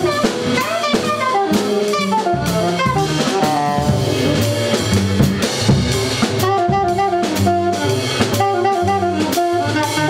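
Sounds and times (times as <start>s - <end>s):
alto saxophone: 0.0s - 10.0s
drum and cymbal hits: 0.0s - 10.0s
walking double bass line: 0.0s - 10.0s.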